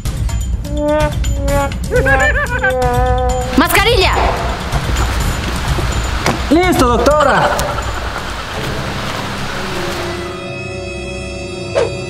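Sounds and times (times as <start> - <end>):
steady rushing hiss: 3.4 - 10.6.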